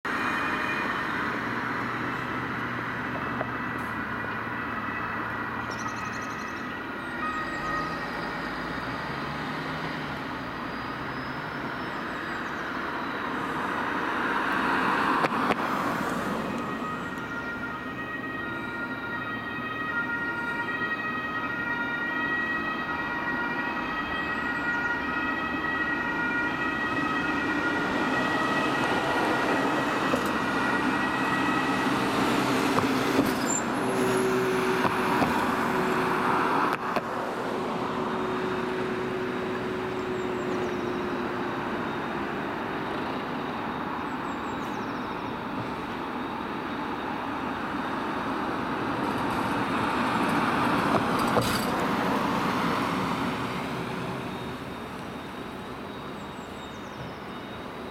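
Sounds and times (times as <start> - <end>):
vehicle engine and tyre noise: 0.0 - 57.9
two-tone ambulance siren: 0.1 - 57.9.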